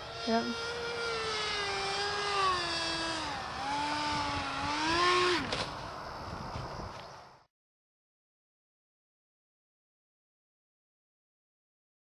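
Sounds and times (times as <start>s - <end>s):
electric ducted fan whining: 0.0s - 7.0s.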